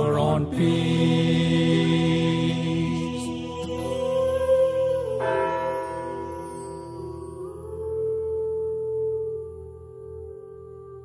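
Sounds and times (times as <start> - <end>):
held musical drone: 0.0 - 11.0
bell ringing: 3.5 - 7.6.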